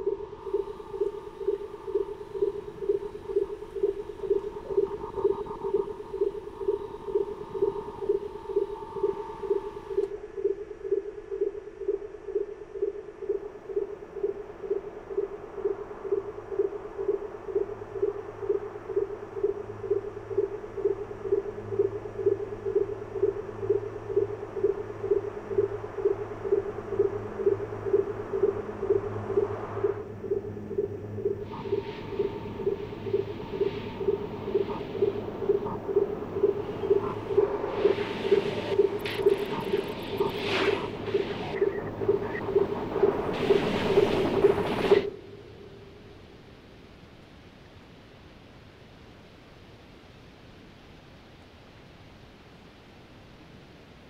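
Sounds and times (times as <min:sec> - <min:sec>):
pulsing electronic tone: 0:00.0 - 0:45.2
high hum: 0:00.0 - 0:46.8
low hum: 0:00.0 - 0:47.5.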